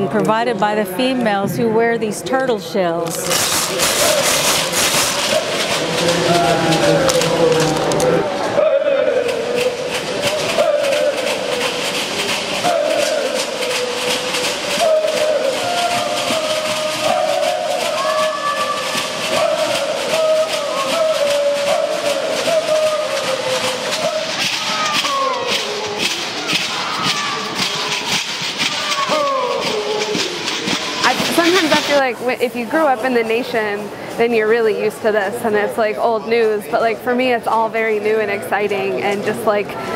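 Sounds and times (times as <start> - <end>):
shell shakers rattling: 3.0 - 35.0
chanted singing: 3.8 - 31.6.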